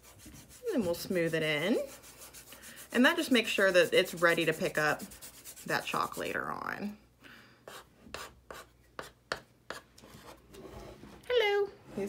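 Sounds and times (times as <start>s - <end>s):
chalk scratching on board: 0.0s - 6.3s, 7.7s - 10.4s.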